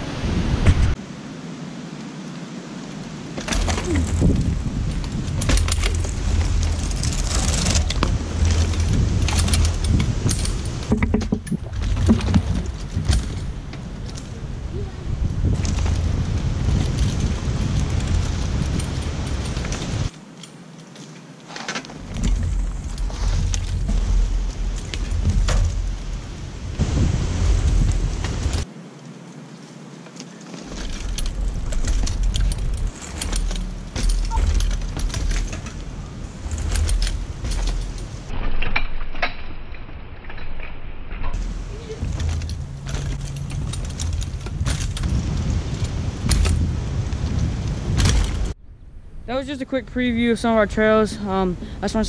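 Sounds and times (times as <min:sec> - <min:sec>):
wind rumble on microphone: 0:00.0 - 0:20.1, 0:22.0 - 0:28.8, 0:30.6 - 0:52.0
bicycle rattling over bumps: 0:03.2 - 0:28.8, 0:30.0 - 0:52.0.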